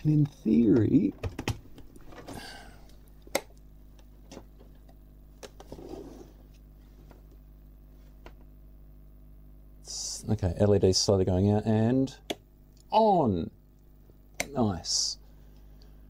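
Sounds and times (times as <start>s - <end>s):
faint steady hum: 0.0s - 16.0s.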